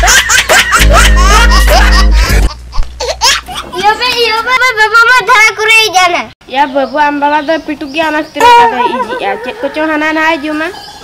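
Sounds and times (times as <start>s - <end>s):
comic laughter sound effect: 0.0s - 3.8s
music with heavy bass: 0.7s - 2.6s.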